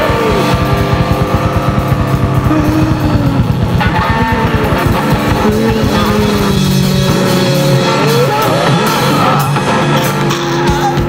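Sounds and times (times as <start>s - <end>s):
guitar slide: 0.0s - 11.0s
loud rock music: 0.0s - 11.0s.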